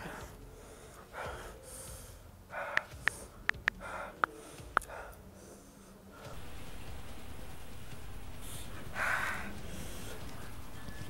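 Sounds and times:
man breathing hard: 0:00.0 - 0:06.1.

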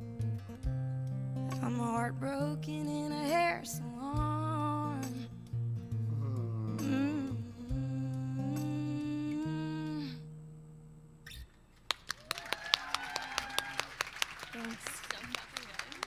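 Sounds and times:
country singing with acoustic guitar: 0:01.3 - 0:10.3
audience applause and cheers: 0:12.1 - 0:16.0.

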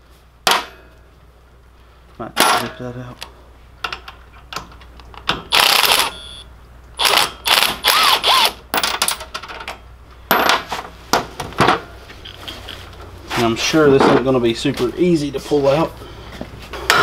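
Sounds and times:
impact wrench rattling bursts: 0:05.5 - 0:06.2, 0:07.0 - 0:09.3.

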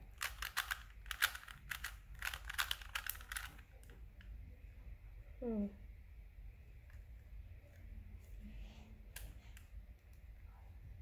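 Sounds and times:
puzzle cube layers clicking: 0:00.2 - 0:03.6.

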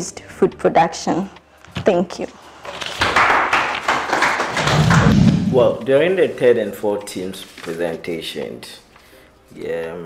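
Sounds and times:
audience applauding: 0:02.7 - 0:05.7
deep low sound: 0:04.7 - 0:05.8.

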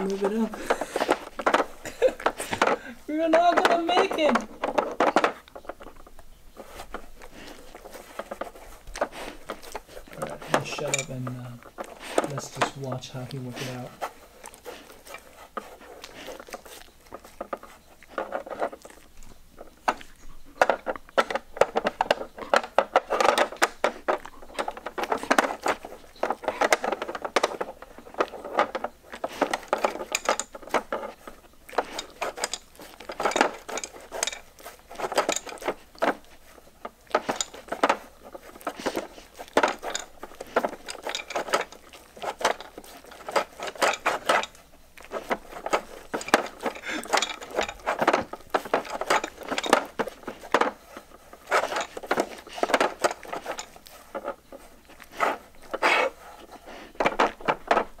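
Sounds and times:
dog licking: 0:06.6 - 0:20.5, 0:41.7 - 0:43.6.

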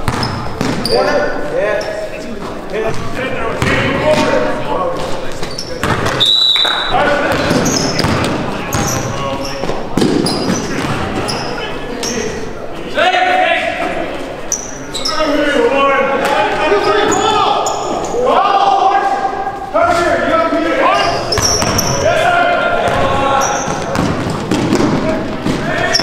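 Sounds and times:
ball hitting backboard and rim: 0:00.0 - 0:00.9, 0:03.6 - 0:04.4, 0:05.8 - 0:06.2, 0:07.2 - 0:09.1, 0:21.3 - 0:22.0, 0:23.7 - 0:26.0
basketball bouncing on wooden court: 0:00.0 - 0:01.0, 0:03.6 - 0:04.3, 0:05.8 - 0:06.2, 0:07.3 - 0:11.3, 0:21.3 - 0:22.0, 0:22.9 - 0:26.0
sneakers squeaking on floor: 0:00.0 - 0:12.6, 0:14.4 - 0:15.5, 0:16.6 - 0:18.2, 0:20.8 - 0:22.2, 0:22.8 - 0:26.0
players calling out: 0:00.0 - 0:26.0.

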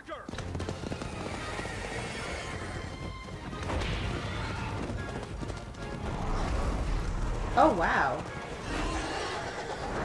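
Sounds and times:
soundtrack music: 0:03.4 - 0:10.0.

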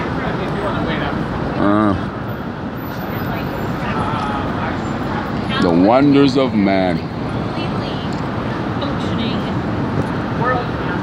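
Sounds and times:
traffic: 0:00.0 - 0:11.0.

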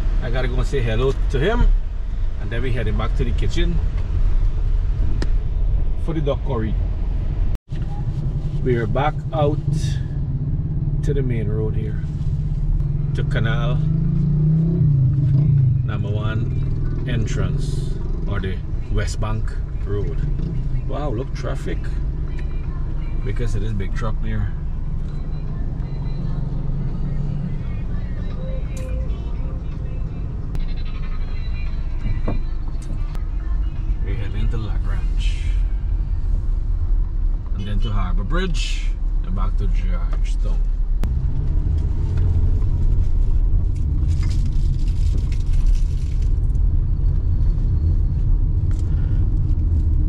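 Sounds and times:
car engine drone: 0:00.0 - 0:50.0
road noise: 0:00.0 - 0:50.0
voices: 0:15.8 - 0:36.2.

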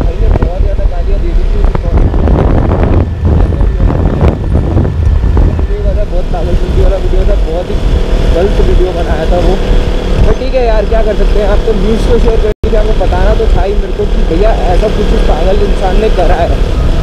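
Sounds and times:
motorcycle engine: 0:00.0 - 0:17.0
wind buffeting microphone: 0:00.0 - 0:17.0.

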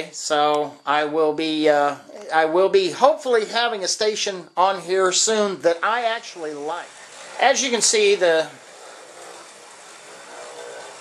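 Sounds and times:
even hiss: 0:04.9 - 0:11.0
model train motor hum and rolling: 0:05.1 - 0:11.0.

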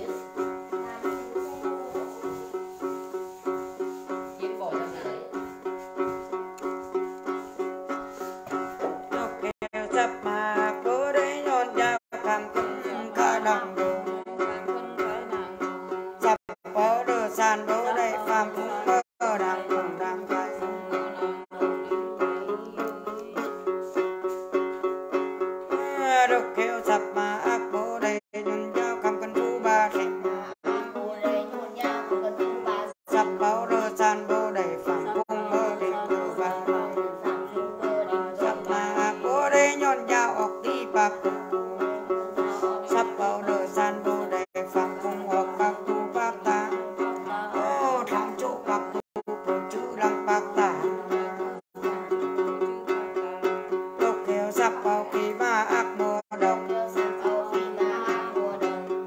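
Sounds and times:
person singing a chant: 0:00.0 - 0:05.8, 0:08.2 - 0:24.4, 0:25.7 - 0:59.0
plucked lute: 0:00.0 - 0:59.0.

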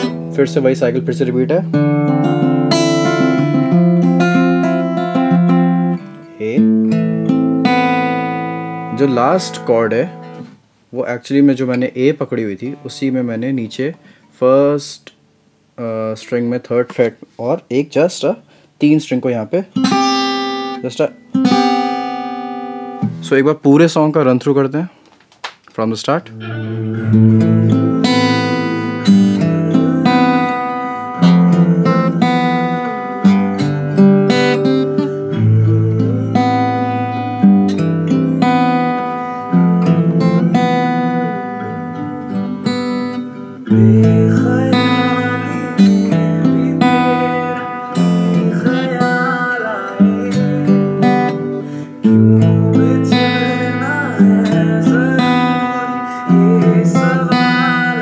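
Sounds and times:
fingerstyle acoustic guitar: 0:00.0 - 0:10.7, 0:19.7 - 0:23.3, 0:26.3 - 0:58.0.

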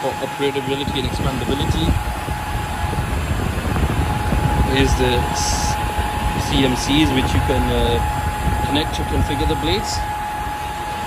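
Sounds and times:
cooling fans running: 0:00.0 - 0:11.0
thin steady whine: 0:00.0 - 0:11.0.

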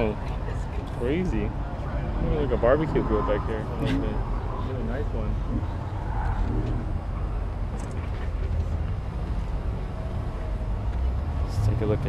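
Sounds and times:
outdoor crowd rumble: 0:00.0 - 0:12.0.

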